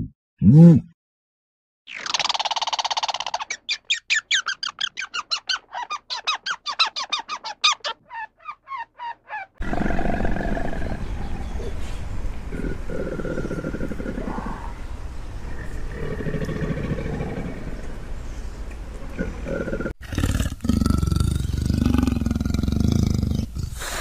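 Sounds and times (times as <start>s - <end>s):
squirrel alarm chatter and chirps: 1.9s - 9.6s
outdoor background noise: 1.9s - 24.0s.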